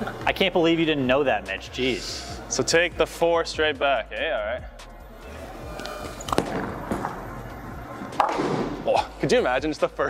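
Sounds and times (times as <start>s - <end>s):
footsteps: 5.3s - 8.9s
bowling ball rolling: 5.8s - 8.9s.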